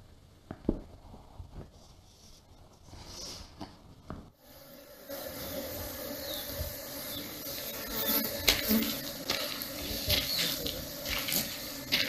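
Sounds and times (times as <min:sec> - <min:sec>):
steady hissing noise: 0:00.0 - 0:12.0.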